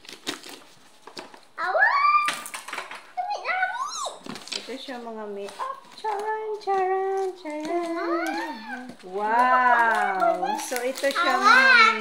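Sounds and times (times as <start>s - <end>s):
child squealing: 1.6s - 2.5s.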